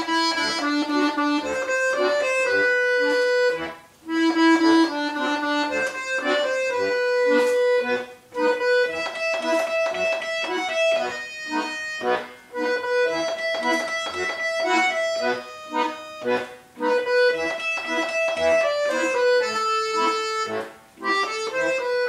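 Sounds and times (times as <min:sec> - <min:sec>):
button accordion melody: 0:00.0 - 0:22.0.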